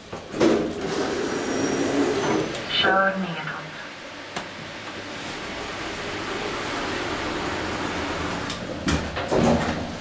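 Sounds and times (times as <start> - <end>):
elevator doors sliding: 0.0 - 2.8, 4.5 - 10.0.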